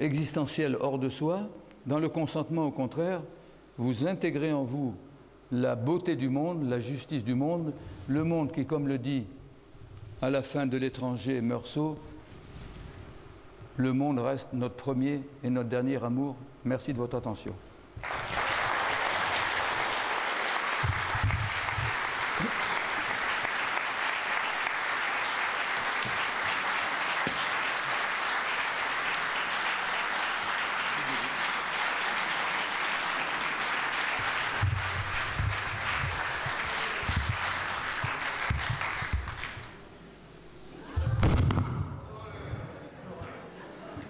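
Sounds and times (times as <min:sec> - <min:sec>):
audience applause: 0:18.0 - 0:39.7.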